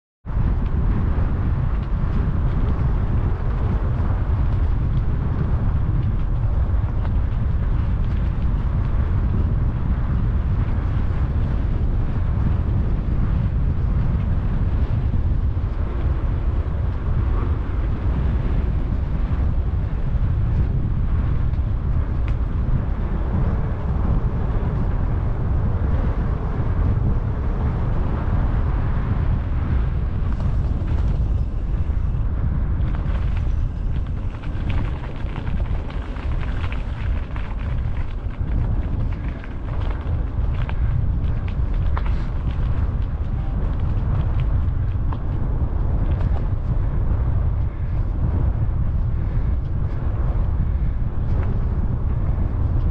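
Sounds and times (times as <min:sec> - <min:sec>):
wind buffeting microphone: 0:00.2 - 0:52.9
bicycle riding on asphalt: 0:00.3 - 0:52.9.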